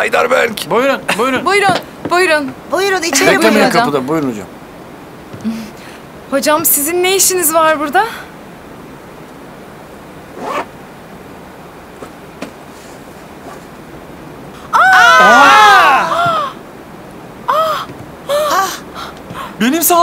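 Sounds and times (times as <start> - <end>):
people crying out in surprise: 14.6 - 16.6, 17.5 - 18.9.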